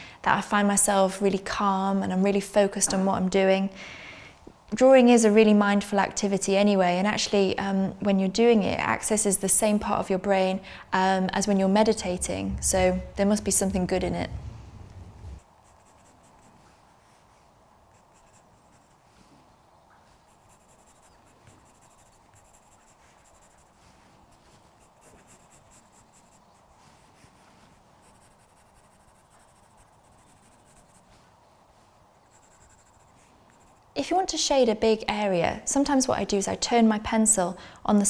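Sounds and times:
pencil strokes on paper: 15.3 - 19.4, 20.1 - 34.0.

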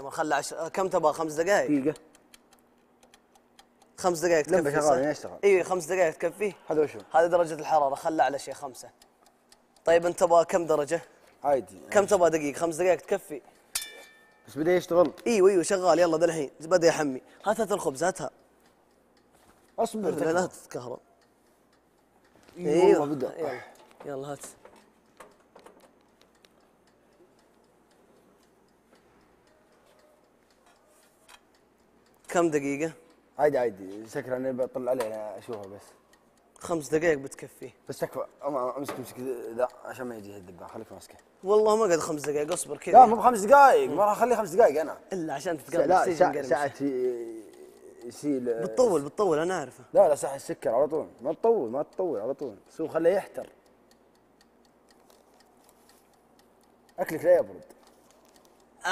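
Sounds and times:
timer click: 0.0 - 58.9
timer dial ticking: 0.0 - 58.9.

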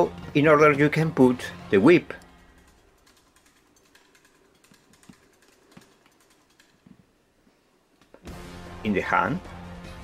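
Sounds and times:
plastic parts clicking and tapping: 2.1 - 7.1.

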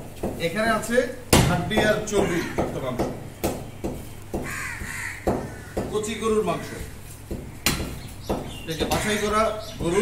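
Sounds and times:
crow cawing: 2.1 - 2.8, 4.3 - 8.0, 8.8 - 10.0.

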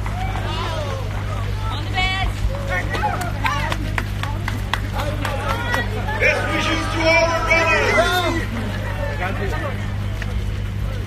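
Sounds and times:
crowd calling out and cheering: 0.0 - 11.0
steady low hum: 0.0 - 11.0.

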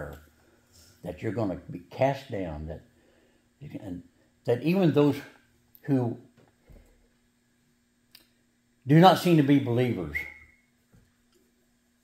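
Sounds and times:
man speaking: 0.0 - 0.2, 1.0 - 2.9, 3.6 - 6.3, 8.9 - 10.4
faint steady hum: 0.0 - 12.0
thin whistle-like tone: 9.8 - 10.8.

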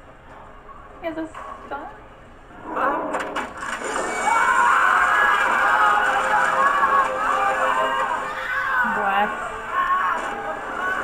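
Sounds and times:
many people screaming: 3.8 - 11.0.

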